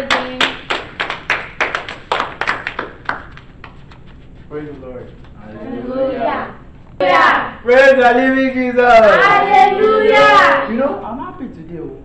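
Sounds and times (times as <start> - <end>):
people clapping in a steady beat: 0.0 - 4.4.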